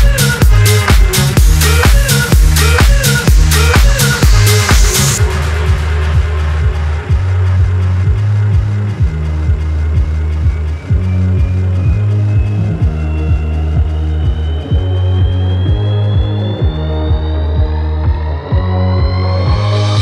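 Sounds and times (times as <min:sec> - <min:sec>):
deep sustained bassline: 0:00.0 - 0:20.0
kick drum: 0:00.0 - 0:20.0
rising synth sweep: 0:03.3 - 0:20.0.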